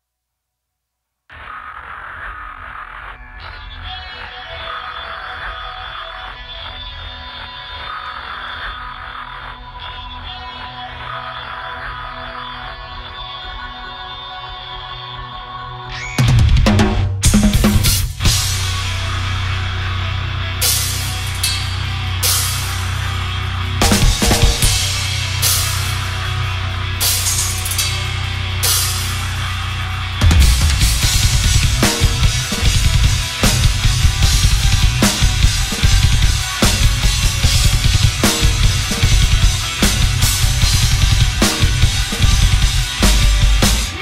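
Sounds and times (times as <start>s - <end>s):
heavy metal backing track: 15.9s - 44.0s
fast bass drum and cymbals: 16.2s - 44.0s
crash cymbals struck: 20.6s - 44.0s.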